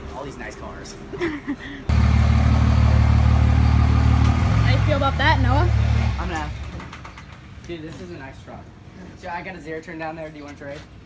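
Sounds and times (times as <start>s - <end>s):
truck engine idling: 1.9s - 6.6s.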